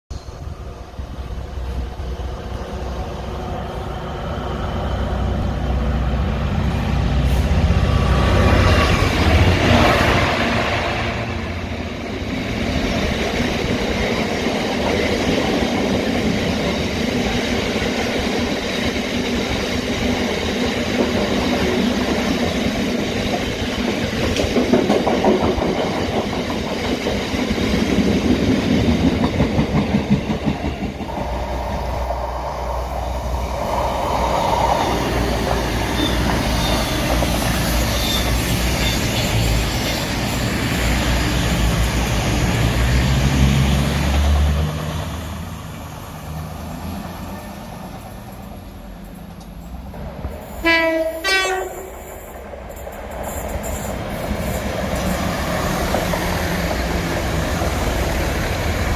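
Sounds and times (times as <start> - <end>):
diesel locomotive engine: 0.1 - 58.9
rhythmic clatter over rail joints: 0.4 - 58.9.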